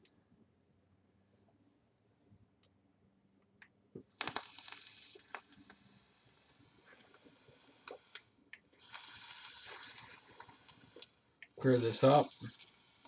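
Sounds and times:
vape coil hissing and crackling: 4.0s - 13.0s
vapor exhaled hiss: 4.1s - 13.0s.

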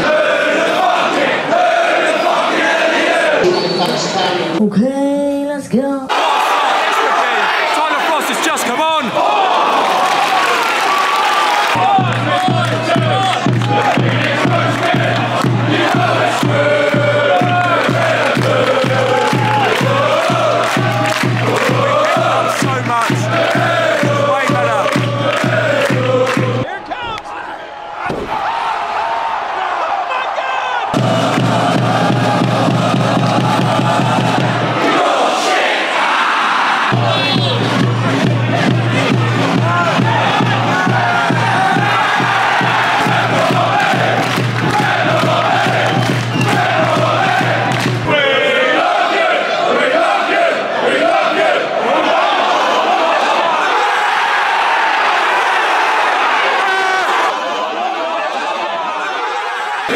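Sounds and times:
football crowd chanting and singing: 0.0s - 4.7s, 6.1s - 59.9s
steady regular beat: 11.7s - 26.7s, 30.9s - 35.1s, 36.8s - 48.2s.

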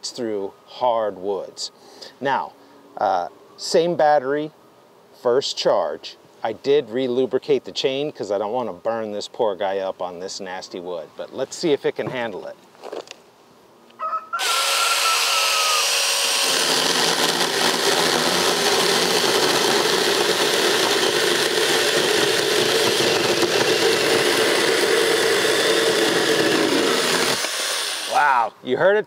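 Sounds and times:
electric chainsaw cutting log: 14.4s - 28.5s.

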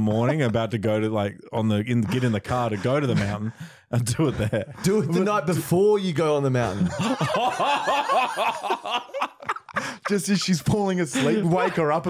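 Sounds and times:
men laughing: 2.1s - 12.0s.

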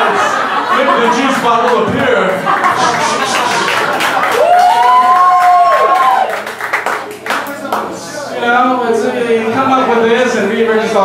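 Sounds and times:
audience clapping: 1.6s - 8.0s.

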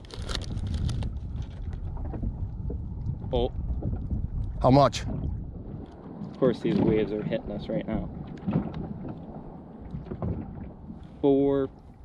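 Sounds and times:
small waves lapping against hull: 0.0s - 12.0s
wind on microphone: 0.0s - 12.0s.

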